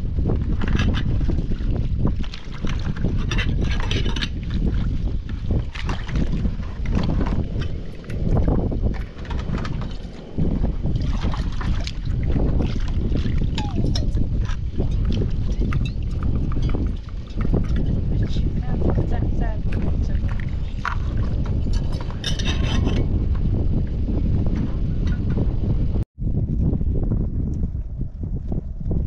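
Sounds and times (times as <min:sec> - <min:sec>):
wind rumbling on microphone: 0:00.0 - 0:29.0
clinks and splashes of rinsing dishes: 0:00.6 - 0:04.9, 0:11.0 - 0:23.1.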